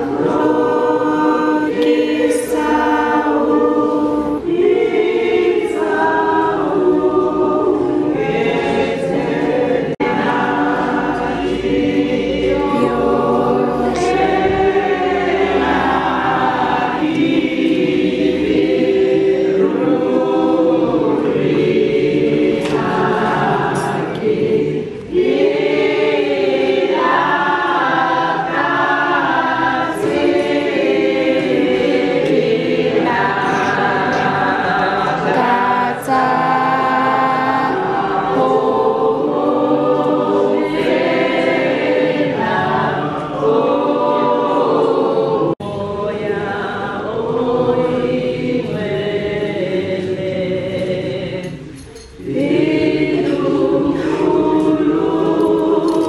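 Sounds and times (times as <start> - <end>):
gospel choir singing: 0.0 - 56.0.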